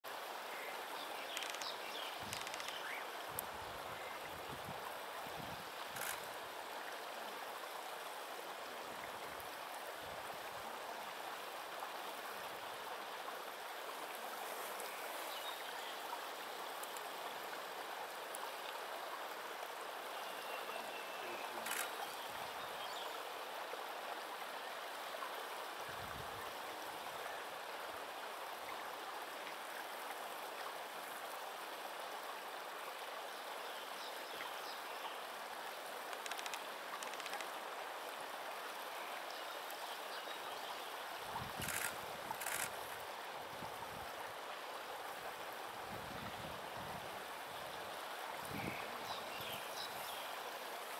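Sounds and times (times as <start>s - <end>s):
flowing water rushing: 0.0s - 50.9s.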